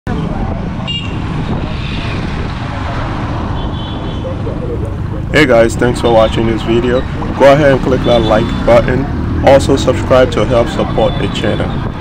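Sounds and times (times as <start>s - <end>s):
motorcycle engine rumble: 0.1s - 12.0s
wind and road noise: 0.1s - 12.0s.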